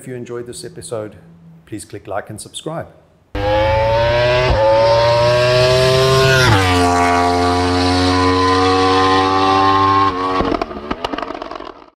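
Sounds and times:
exhaust popping: 3.4 - 11.9
motorcycle engine under load: 3.4 - 11.9.

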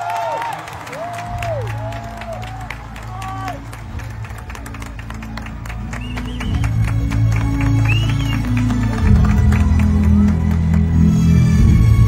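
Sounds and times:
crowd applauding: 0.0 - 12.0.

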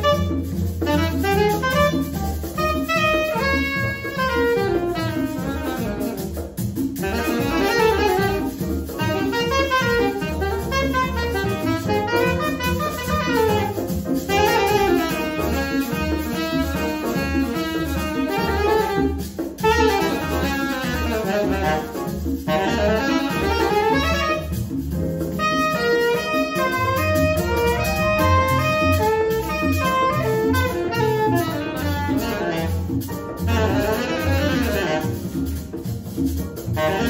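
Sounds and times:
plucked upright bass: 0.0 - 19.0, 19.6 - 37.0
saxophone lead: 0.0 - 35.7, 36.7 - 37.0
congas: 0.0 - 37.0
grand piano: 0.0 - 37.0.

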